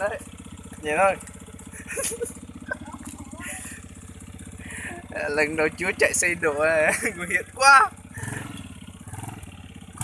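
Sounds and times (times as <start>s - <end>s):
motorcycle engine putter: 0.2s - 4.6s.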